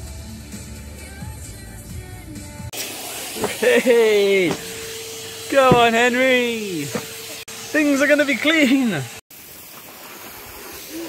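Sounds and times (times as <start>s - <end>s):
garden hose spraying water: 2.7s - 11.0s.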